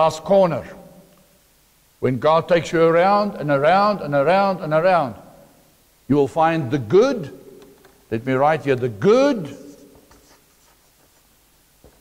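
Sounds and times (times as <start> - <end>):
marker scratching on paper: 9.6 - 11.4.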